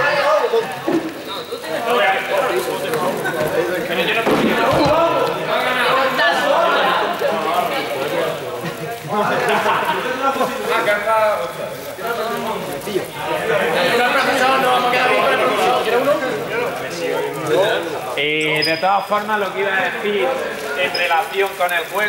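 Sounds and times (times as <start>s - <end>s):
overlapping voices: 0.0s - 18.3s.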